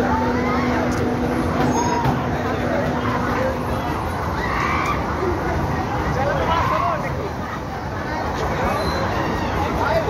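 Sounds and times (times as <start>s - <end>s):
ride machinery humming: 0.0s - 6.4s.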